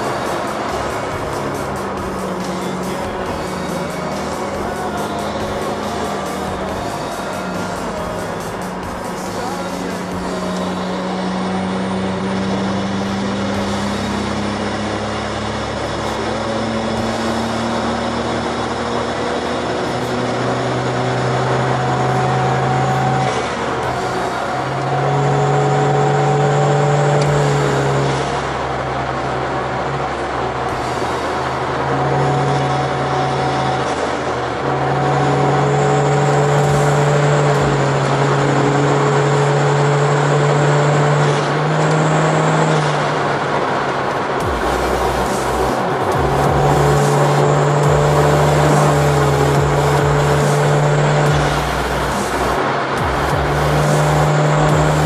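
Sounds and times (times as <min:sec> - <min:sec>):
car engine droning under load: 0:00.0 - 0:55.0.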